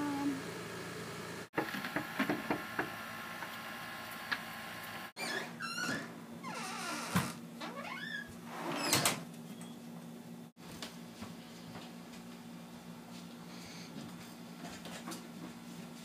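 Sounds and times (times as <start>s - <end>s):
wooden door creaking: 5.2s - 9.2s.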